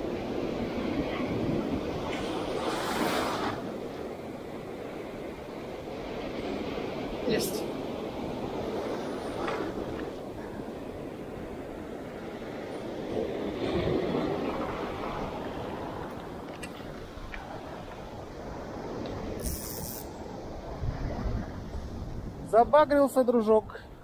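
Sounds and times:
waves breaking on a beach: 0.0s - 24.0s.

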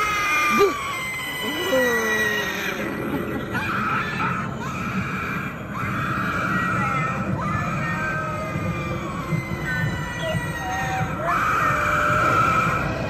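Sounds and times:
high recorded scream: 0.0s - 13.0s
low background rumble: 0.0s - 13.0s.

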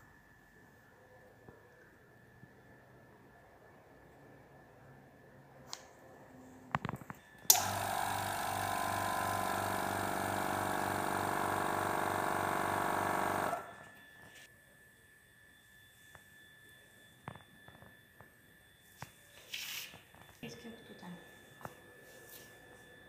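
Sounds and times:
small electric machine pulsing: 7.1s - 19.4s.

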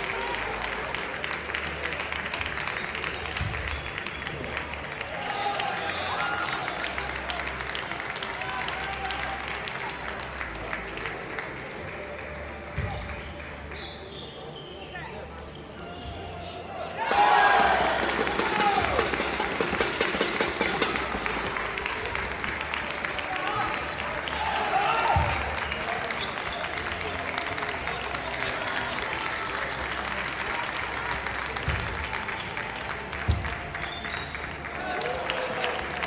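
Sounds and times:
people clapping: 0.0s - 14.1s, 17.0s - 36.0s
murmur of distant voices: 0.0s - 36.0s
soft background music: 0.0s - 36.0s.

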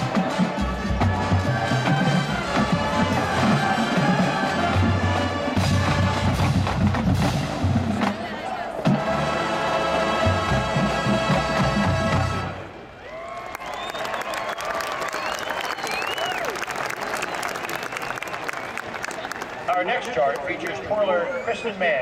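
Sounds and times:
drumline with bass drums: 0.0s - 12.6s
marching band brass: 0.0s - 12.9s.

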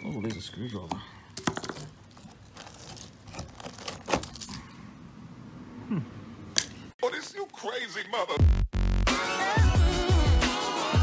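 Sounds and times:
rust cracking and crunching: 0.0s - 4.7s.

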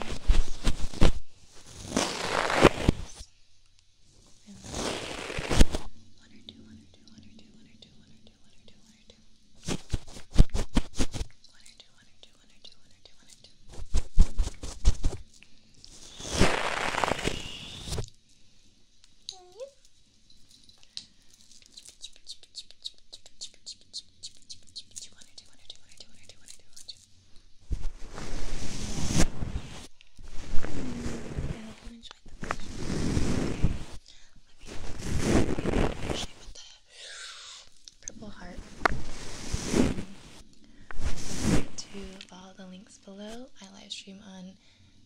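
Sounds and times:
fluffy brush stroking microphone: 0.0s - 3.2s, 4.5s - 5.9s, 9.6s - 11.2s, 13.7s - 15.2s, 16.0s - 18.0s, 27.7s - 34.0s, 34.6s - 36.5s, 38.2s - 42.2s
sharp taps and crackles on microphone: 9.6s - 11.6s, 13.7s - 15.3s
faint small ticks: 19.0s - 27.5s
loud rustling rush: 27.7s - 31.7s, 32.7s - 34.0s, 38.6s - 40.4s, 41.0s - 42.0s.

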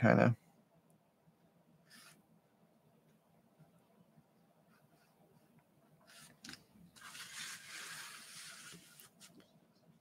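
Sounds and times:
board scraping on desktop: 7.0s - 9.3s.

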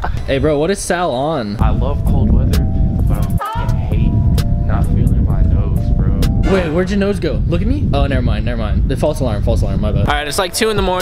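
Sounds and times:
electronic music with heavy bass: 1.6s - 7.1s.

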